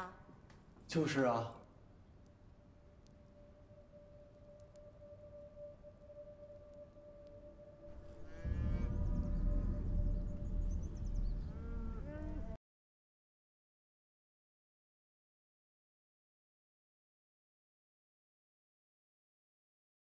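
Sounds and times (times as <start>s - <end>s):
loud low rumble: 8.0s - 12.6s
animal call: 11.4s - 12.6s.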